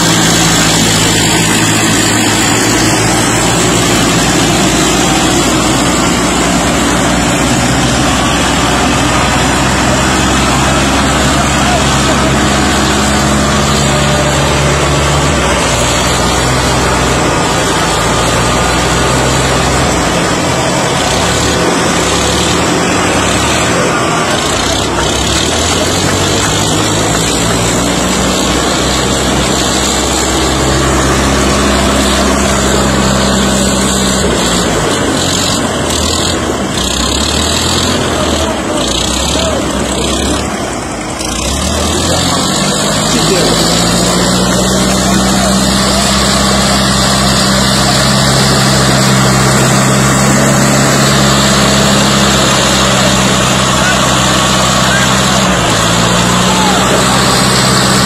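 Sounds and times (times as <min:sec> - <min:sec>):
tractor diesel engines under load: 0:00.0 - 0:58.0.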